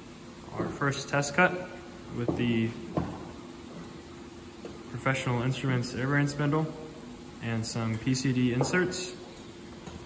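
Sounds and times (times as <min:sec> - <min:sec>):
workshop room hum and hiss: 0:00.0 - 0:10.0
person speaking: 0:07.4 - 0:09.3.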